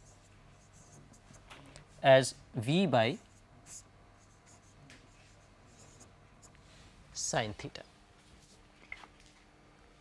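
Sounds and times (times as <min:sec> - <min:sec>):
marker pen writing on whiteboard: 0:00.0 - 0:01.5, 0:03.2 - 0:06.6.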